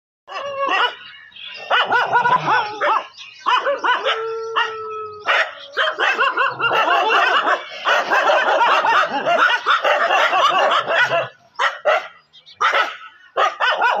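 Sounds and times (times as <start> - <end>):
dogs barking and yelping: 0.3 - 14.0.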